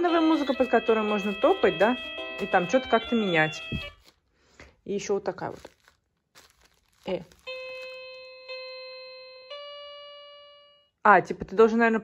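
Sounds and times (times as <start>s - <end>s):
electronic notes from speaker: 0.0s - 4.0s, 7.4s - 10.9s.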